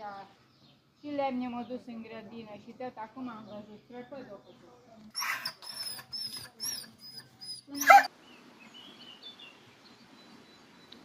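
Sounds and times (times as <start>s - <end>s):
dog barking: 7.8s - 8.1s.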